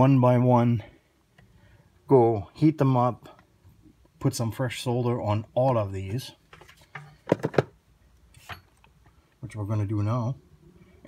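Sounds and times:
plastic knocks and clicks: 7.0 - 7.8.

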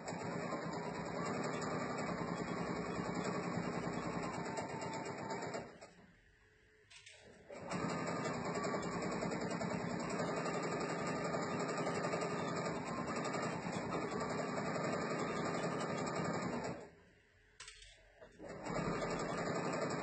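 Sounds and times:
sewing machine stitching: 0.0 - 5.9, 7.5 - 16.9, 18.4 - 20.0.

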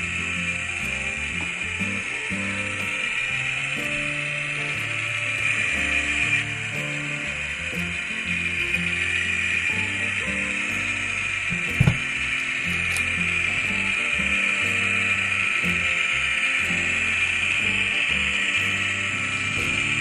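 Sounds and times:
low background music: 0.0 - 20.0
model train motor whirring: 0.0 - 20.0
short thump: 11.8 - 12.0.

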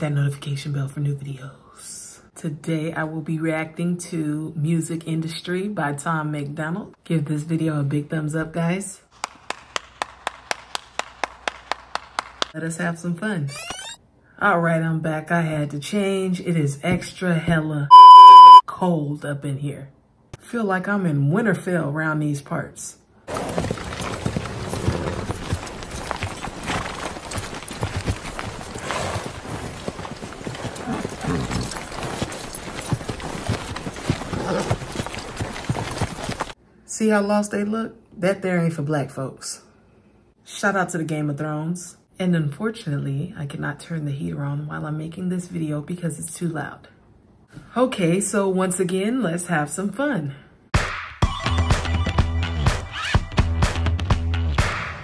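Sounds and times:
person clapping hands: 9.2 - 12.5
horse hooves clip-clopping: 23.3 - 36.6.

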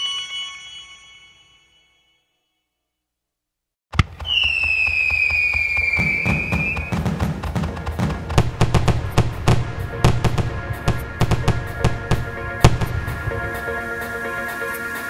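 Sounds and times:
music: 0.0 - 2.8, 6.0 - 15.0
firework bangs and crackling: 4.0 - 14.0
firework whistle: 4.2 - 7.7, 9.9 - 15.0.

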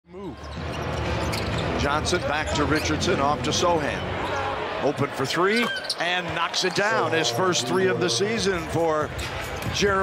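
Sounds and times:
crowd noise: 0.0 - 10.0
commentator speaking: 6.0 - 9.1.

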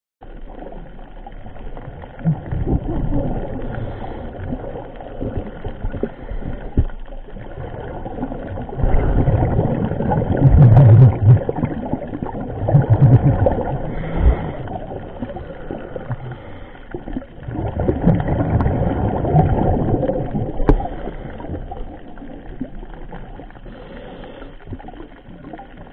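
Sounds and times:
faint crackles: 0.2 - 25.9
muffled underwater hiss: 0.3 - 25.9.

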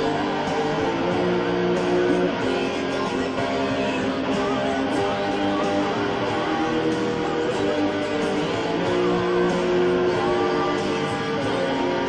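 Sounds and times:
electric guitar ringing notes: 0.0 - 12.0.

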